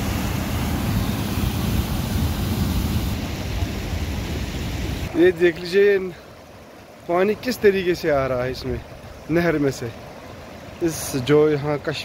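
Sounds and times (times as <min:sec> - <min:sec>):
fast-flowing stream rushing: 0:00.0 - 0:12.0.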